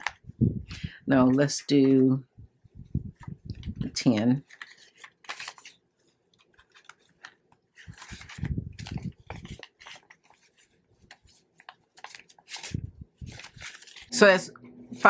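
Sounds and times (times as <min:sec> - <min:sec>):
plastic binder pocket crinkling: 0:00.0 - 0:00.2, 0:03.2 - 0:14.2
banknotes rustling and flicking: 0:02.9 - 0:14.4.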